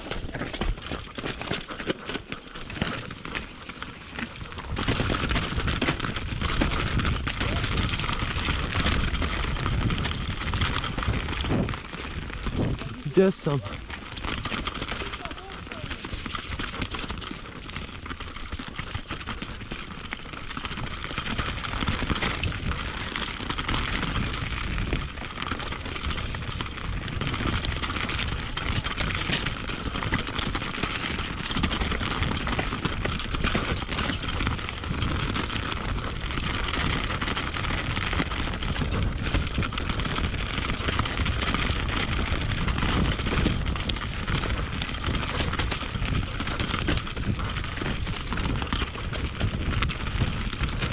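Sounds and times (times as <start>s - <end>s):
bike rattling: 0.0s - 50.9s
bike tyres rumbling over dirt: 0.0s - 50.9s.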